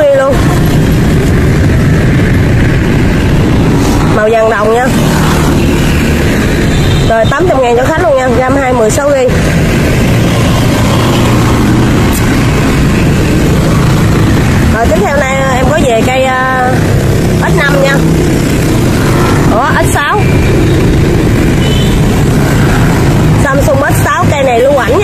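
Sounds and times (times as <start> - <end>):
loud traffic noise: 0.0 - 25.0.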